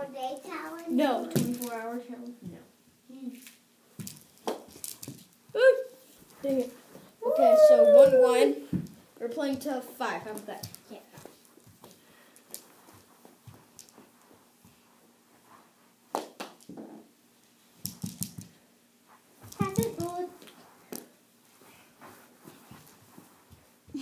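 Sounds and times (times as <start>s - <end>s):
plastic sticks clacking ball: 3.4s - 5.3s, 10.3s - 12.7s, 17.8s - 18.5s, 19.5s - 21.1s.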